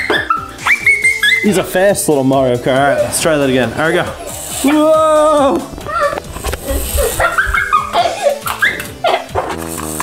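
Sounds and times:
background music: 0.0 - 10.0
people's excited wordless cries: 4.2 - 8.9.

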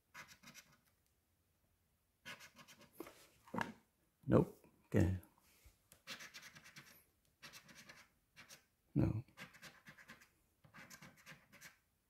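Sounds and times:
coin scratching lottery ticket: 0.1 - 0.8, 6.0 - 8.6, 9.4 - 11.8.

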